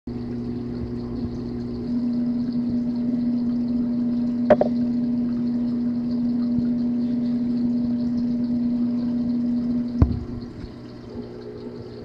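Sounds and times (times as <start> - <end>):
aquarium pump humming: 0.1 - 12.0.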